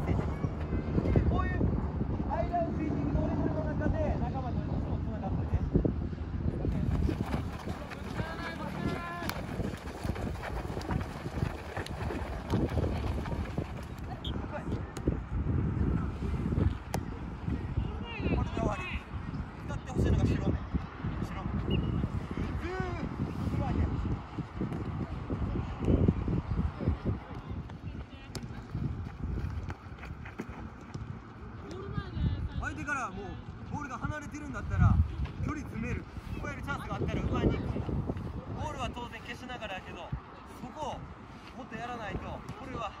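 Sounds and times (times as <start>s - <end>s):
ball kicks and footsteps: 6.8s - 15.1s, 16.6s - 17.2s, 24.0s - 25.1s, 27.2s - 32.2s, 41.4s - 43.0s.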